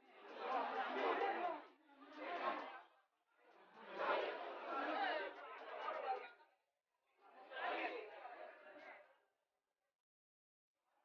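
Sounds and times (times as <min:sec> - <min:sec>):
crowd chatter: 0:00.2 - 0:02.8.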